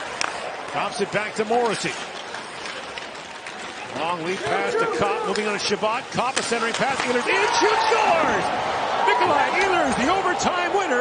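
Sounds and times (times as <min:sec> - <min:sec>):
ice rink ambience: 0:00.0 - 0:11.0.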